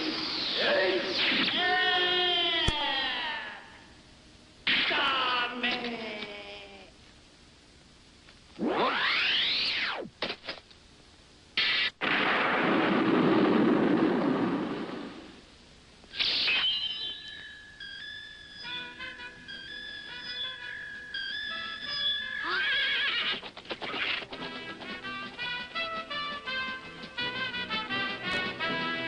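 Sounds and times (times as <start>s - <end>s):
horse whinnying: 22.0s - 23.5s.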